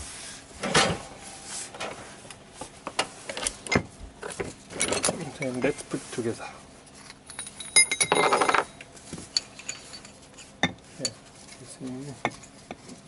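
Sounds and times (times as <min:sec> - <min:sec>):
metal parts clinking: 0:04.8 - 0:05.5, 0:07.0 - 0:11.2.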